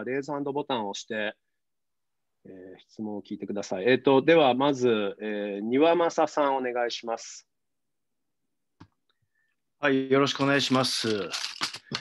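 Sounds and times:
man speaking: 0:09.8 - 0:11.5.

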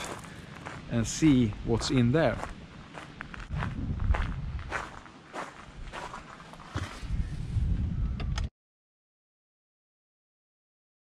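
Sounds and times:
footsteps on gravel: 0:00.0 - 0:07.2
low microphone rumble: 0:03.3 - 0:05.0, 0:06.8 - 0:08.5.

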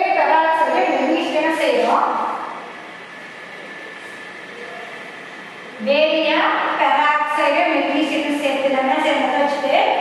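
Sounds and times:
woman's voice: 0:00.0 - 0:02.4, 0:05.8 - 0:10.0.

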